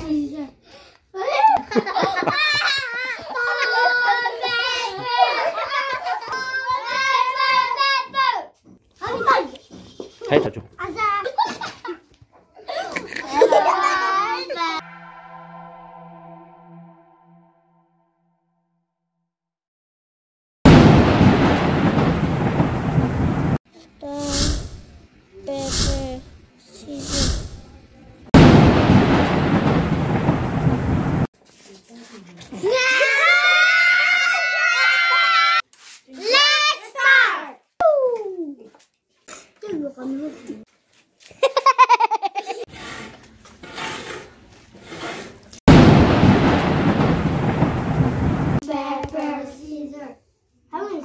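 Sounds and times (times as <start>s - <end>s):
child laughing: 1.2s - 6.9s, 11.1s - 14.7s, 41.3s - 42.7s
thunder-like crash: 14.6s - 18.1s, 20.7s - 23.6s, 28.4s - 31.3s, 45.7s - 48.6s.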